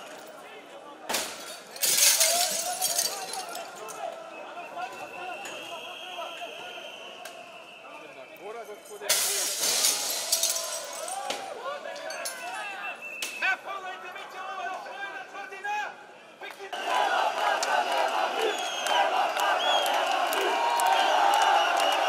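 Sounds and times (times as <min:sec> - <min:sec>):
glass breaking crash: 0:01.2 - 0:03.6, 0:09.1 - 0:11.3
broken glass clinking and crunching: 0:01.3 - 0:03.9, 0:09.1 - 0:11.3
crowd shouting: 0:16.7 - 0:22.0.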